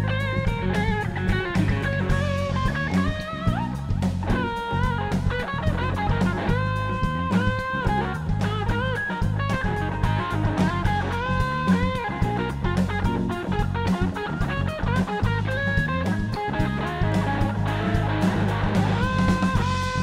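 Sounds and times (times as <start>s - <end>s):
bass line: 0.0s - 20.0s
drum kit steady beat: 0.0s - 20.0s
electric guitar lead with bent notes: 0.0s - 20.0s.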